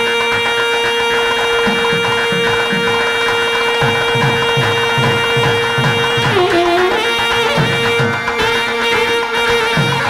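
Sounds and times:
saxophone holding long note: 0.0s - 10.0s.

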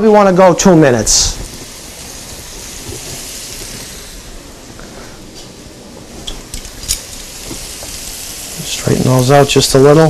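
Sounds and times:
fish sizzling in a frying pan: 1.1s - 10.0s.

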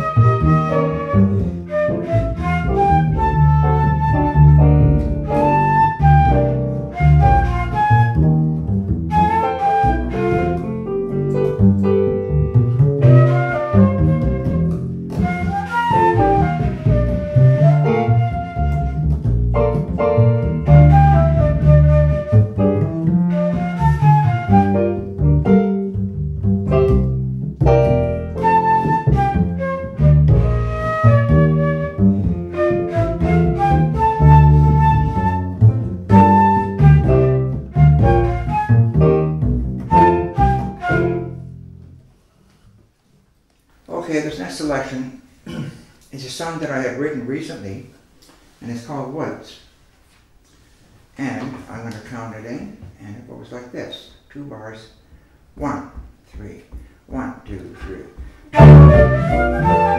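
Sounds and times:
digital piano: 0.0s - 41.5s, 58.5s - 59.9s
flute melody: 0.0s - 41.8s, 57.8s - 59.9s
upright double bass: 0.0s - 42.3s, 55.0s - 59.9s.

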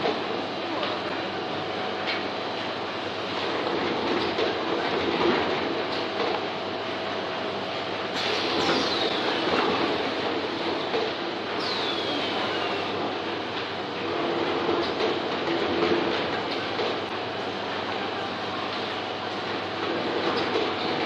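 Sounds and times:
machine clatter and hum: 0.0s - 21.0s.

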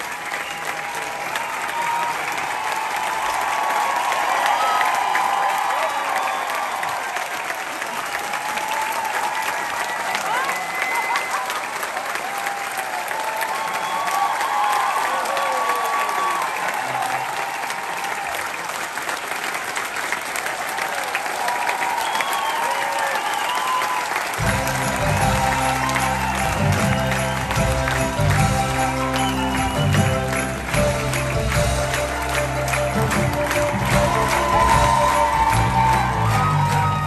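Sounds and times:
shouts and whoops: 0.0s - 7.3s, 8.1s - 18.5s, 20.8s - 24.4s, 25.0s - 27.6s, 33.7s - 37.0s
audience applauding and cheering: 0.0s - 37.0s
band music with heavy bass beat: 24.4s - 37.0s.

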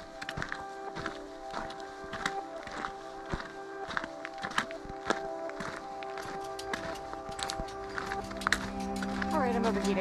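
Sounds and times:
footsteps on gravel: 0.0s - 10.0s
soft background music: 0.0s - 10.0s.

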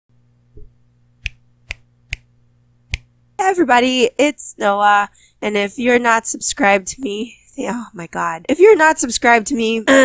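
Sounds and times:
finger snaps: 0.6s - 2.3s, 2.9s - 3.1s.

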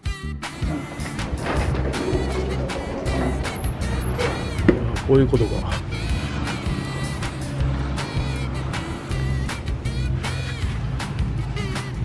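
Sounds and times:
music with beat and bass: 0.0s - 12.0s.

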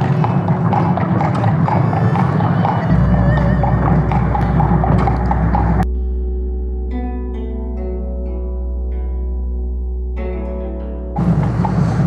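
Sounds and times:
horse hooves clip-clopping on pavement: 0.0s - 5.8s, 11.2s - 12.0s
low steady hum: 0.0s - 12.0s.

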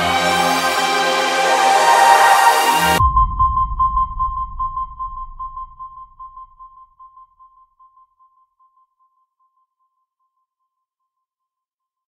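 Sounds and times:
pulsing high synth tone: 0.0s - 6.7s
low rumble: 0.0s - 6.8s.

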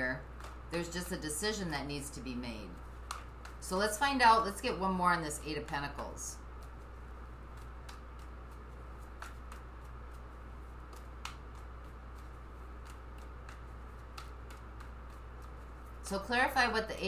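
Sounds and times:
low steady hum: 0.0s - 17.0s
cards being shuffled: 0.1s - 16.8s.

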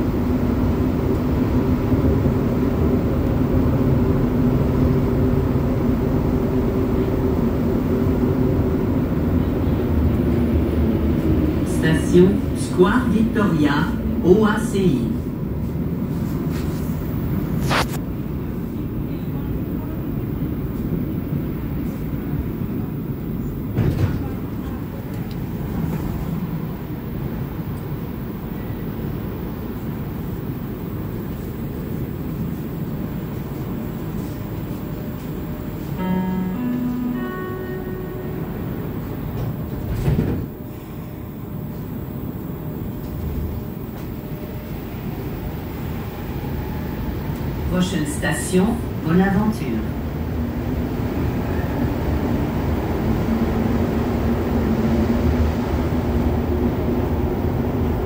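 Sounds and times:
subway train rumble: 0.0s - 58.0s
two-note tone: 35.9s - 39.4s.

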